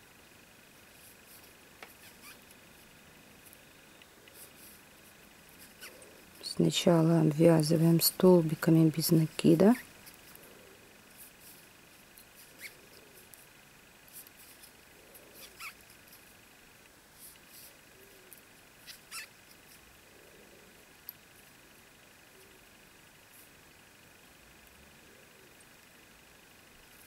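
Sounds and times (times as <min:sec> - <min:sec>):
faint high whine: 0:00.0 - 0:27.0.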